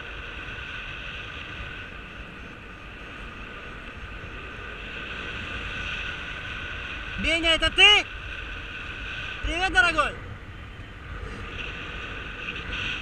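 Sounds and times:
airflow rushing over microphone: 0:00.0 - 0:13.0.

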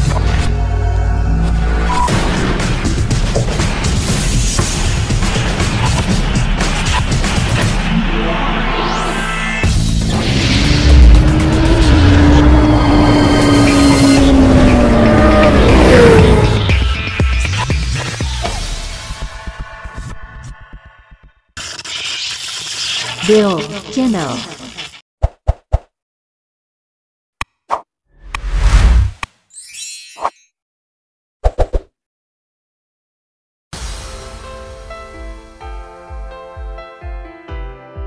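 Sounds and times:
music: 0:00.0 - 0:21.5, 0:33.8 - 0:38.0
motorcycle engine: 0:09.6 - 0:17.0.

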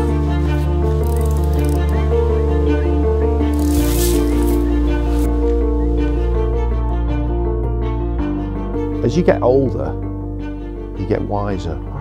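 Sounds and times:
music with sustained chords: 0:00.0 - 0:12.0.

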